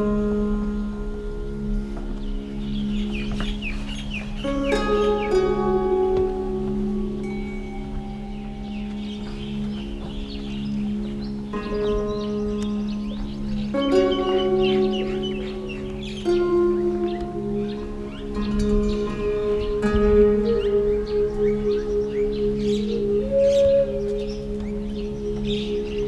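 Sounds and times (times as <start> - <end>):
bell-like chords: 0.0 - 26.0
steady low drone: 0.0 - 26.0.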